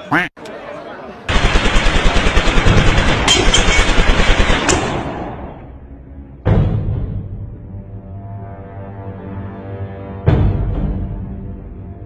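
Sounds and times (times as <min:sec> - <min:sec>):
automatic gunfire: 0:01.3 - 0:05.6.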